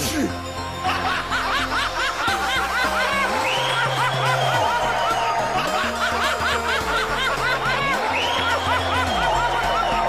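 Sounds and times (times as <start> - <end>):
rapid snickering laughter: 5.6 - 10.0.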